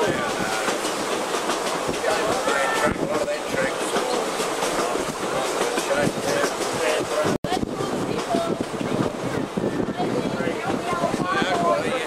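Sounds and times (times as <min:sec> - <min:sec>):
wheels clicking over rail joints: 0:00.0 - 0:09.2
railway carriage rumbling: 0:00.0 - 0:12.0.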